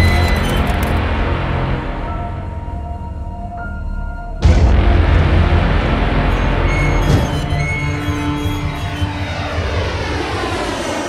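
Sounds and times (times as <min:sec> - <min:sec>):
jet engine rumble: 0:09.0 - 0:11.0.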